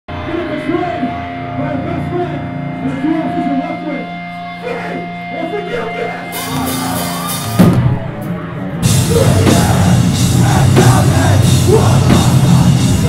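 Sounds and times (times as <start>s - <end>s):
live hardcore band: 0.1s - 13.0s
drums and distorted guitars: 6.2s - 13.0s.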